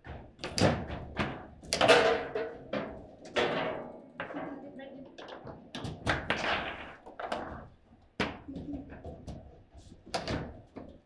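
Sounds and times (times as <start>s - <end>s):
foosball ball knocks and thunks: 0.0s - 4.3s, 5.5s - 8.5s.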